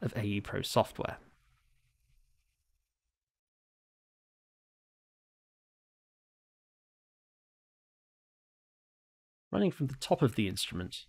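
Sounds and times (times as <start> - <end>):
narrator speaking: 0.0 - 1.2, 9.6 - 11.0.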